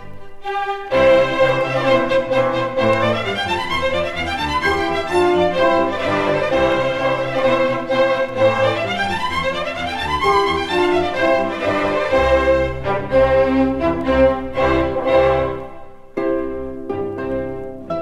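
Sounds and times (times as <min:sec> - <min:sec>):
string orchestra playing: 0:00.0 - 0:18.0.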